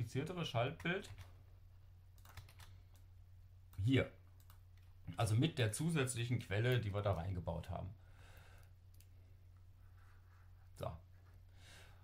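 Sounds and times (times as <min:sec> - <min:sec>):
faint keyboard clicks: 0:02.1 - 0:03.1, 0:03.7 - 0:05.0, 0:08.6 - 0:09.2.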